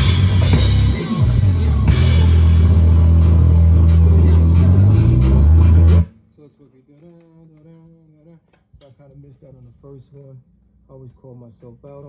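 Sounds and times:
cymbals and drums: 0.0s - 6.1s
drum kit playing: 0.0s - 6.1s
held low bass note: 0.0s - 6.1s.

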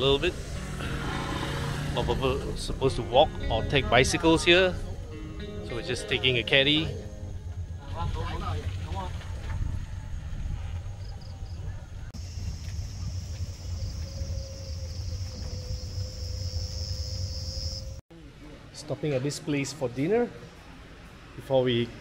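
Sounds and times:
insects chirring: 4.2s - 18.0s
low rumble of wind and motion: 7.0s - 18.0s.

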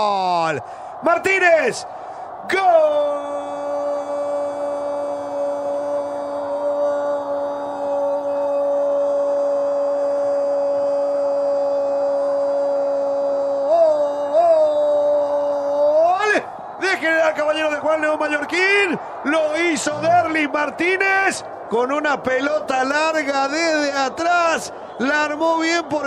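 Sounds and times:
commentator shouting long goal cry: 13.7s - 21.4s.

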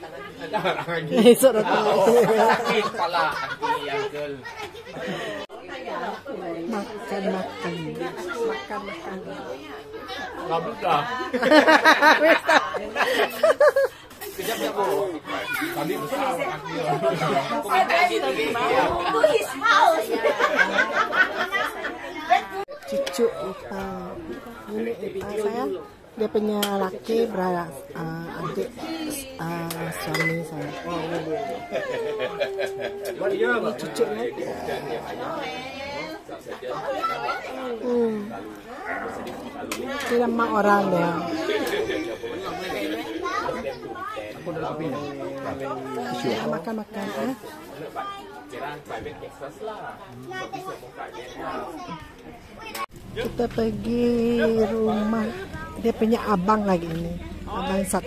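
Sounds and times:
overlapping conversation: 0.0s - 58.0s
people chatting: 0.0s - 58.0s.

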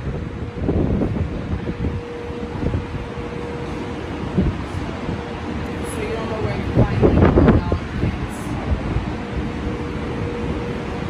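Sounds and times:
steady mid-pitched hum: 0.0s - 11.0s
wind buffeting microphone: 0.0s - 11.0s.

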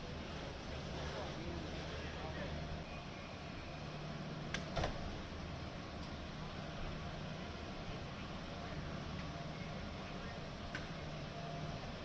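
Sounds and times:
steady low hum: 0.0s - 12.0s
car door thud: 4.7s - 5.1s.

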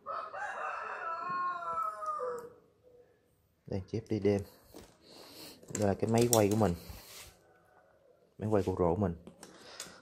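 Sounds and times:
rooster crowing: 0.0s - 2.7s.

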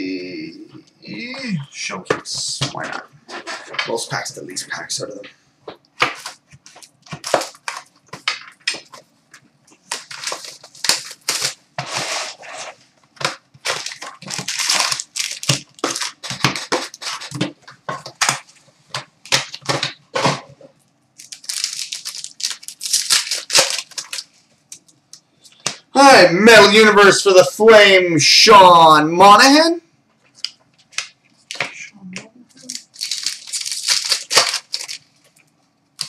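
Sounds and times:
wrappers crinkling and ripping: 6.0s - 9.1s, 9.7s - 20.0s, 21.2s - 25.2s, 32.6s - 36.0s.

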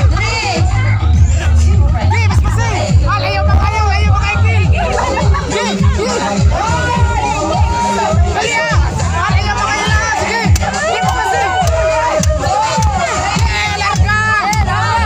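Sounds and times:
crowd shouting and cheering: 0.0s - 15.0s
loud music with bass beat: 0.0s - 15.0s.

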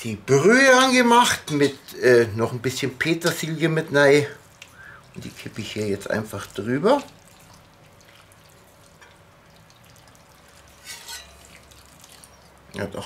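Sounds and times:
liquid trickling through vegetables: 3.0s - 13.0s.

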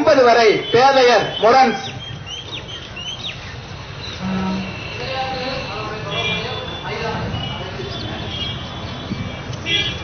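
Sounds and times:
bird chirping: 1.2s - 6.8s.

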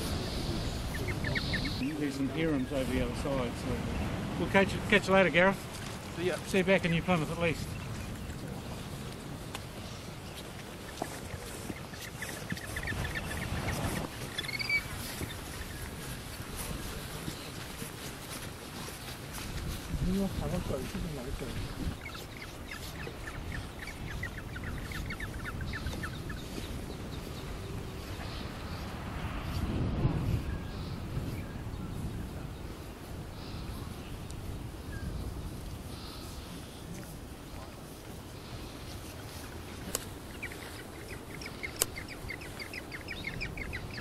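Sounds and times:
small birds chirping: 0.0s - 29.4s, 30.4s - 44.0s
low wind rumble: 0.0s - 44.0s.

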